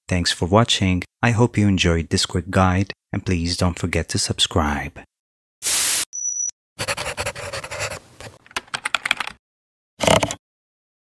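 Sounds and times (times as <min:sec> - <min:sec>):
high beep: 0:06.1 - 0:06.6
rapid scratching strokes: 0:06.8 - 0:08.0.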